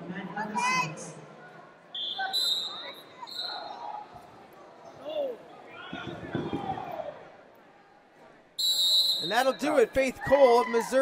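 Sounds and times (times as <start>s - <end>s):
coaches and spectators shouting: 1.9s - 8.1s, 9.1s - 11.0s
referee's whistle blasts: 2.0s - 3.7s, 8.6s - 9.8s.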